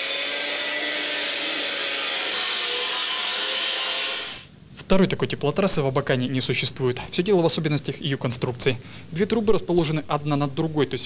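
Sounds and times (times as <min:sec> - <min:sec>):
angle grinder cutting steel pipe: 0:00.0 - 0:04.5.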